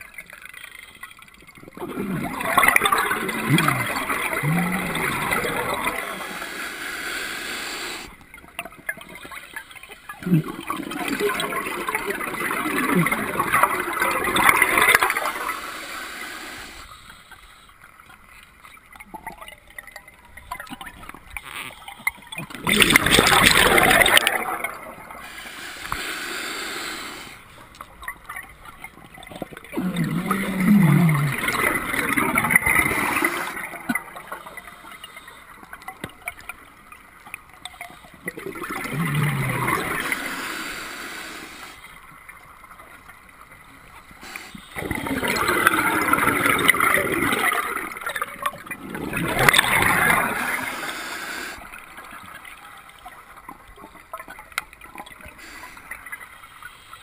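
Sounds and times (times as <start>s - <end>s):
exhaled bubbles rushing: 1.2s - 6.5s, 10.1s - 15.6s, 18.9s - 26.0s, 28.0s - 35.0s, 38.2s - 40.4s, 44.7s - 51.0s.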